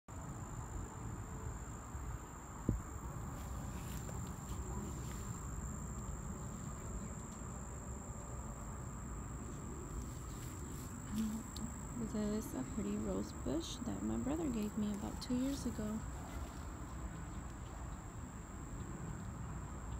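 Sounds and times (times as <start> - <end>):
crickets trilling: 0.1 - 19.9.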